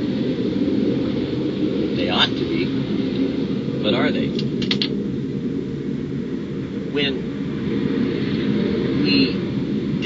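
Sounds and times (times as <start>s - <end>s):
low engine-like rumble: 0.0s - 10.0s.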